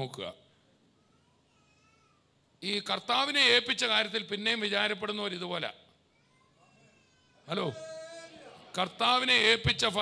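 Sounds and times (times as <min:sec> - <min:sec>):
man's amplified voice: 0:00.0 - 0:00.5, 0:02.6 - 0:05.9, 0:07.4 - 0:10.0.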